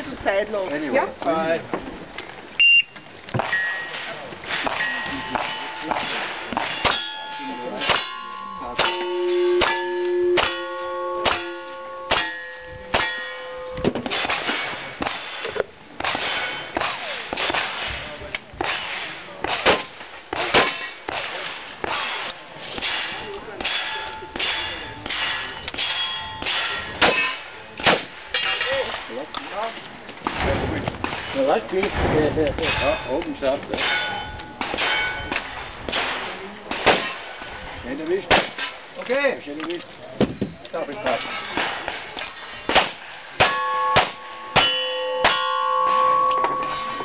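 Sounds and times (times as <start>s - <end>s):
gunshots: 3.4s - 7.1s, 14.1s - 28.2s, 34.6s - 37.4s, 38.3s - 38.8s, 42.7s - 45.4s
steel target clanging and ringing: 3.4s - 18.0s, 18.6s - 29.1s, 32.6s - 37.3s, 41.0s - 47.0s.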